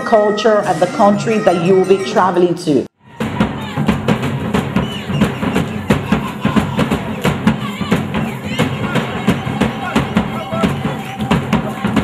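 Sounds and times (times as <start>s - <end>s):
drums beating: 3.0s - 12.0s.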